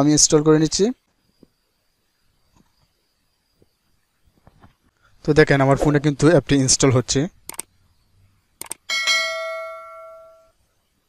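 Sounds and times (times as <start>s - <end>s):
quick clicks: 7.5s - 7.7s, 8.6s - 8.9s
bell ding: 8.9s - 10.6s.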